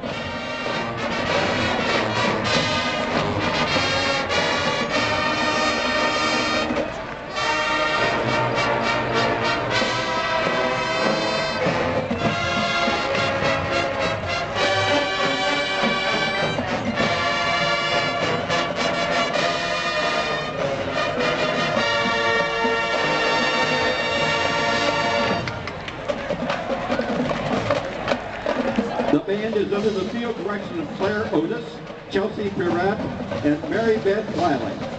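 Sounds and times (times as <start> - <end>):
marching band playing brass chords: 0.0 - 34.9.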